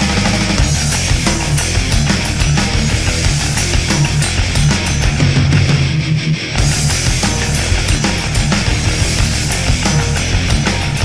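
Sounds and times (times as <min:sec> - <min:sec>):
bass guitar: 0:00.0 - 0:11.0
drums: 0:00.0 - 0:11.0
electric guitar: 0:00.0 - 0:11.0.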